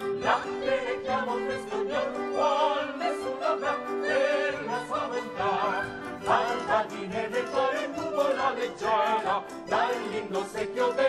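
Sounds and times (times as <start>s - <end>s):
held orchestral notes: 0.0s - 11.0s
voices singing with vibrato: 0.0s - 11.0s.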